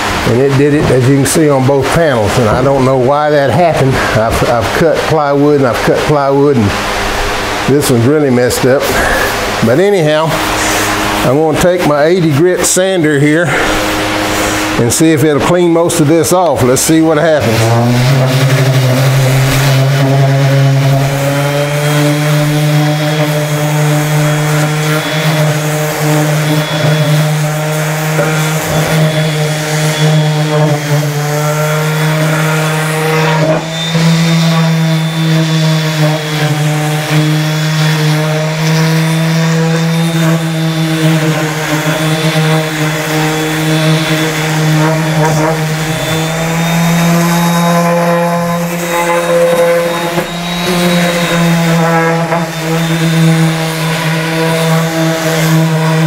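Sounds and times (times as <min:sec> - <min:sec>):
orbital sander on plywood: 0:00.0 - 0:56.0.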